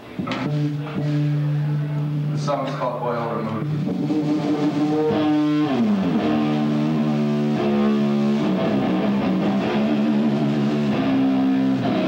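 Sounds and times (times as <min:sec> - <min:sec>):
electric guitar low note ringing: 0:00.0 - 0:12.0.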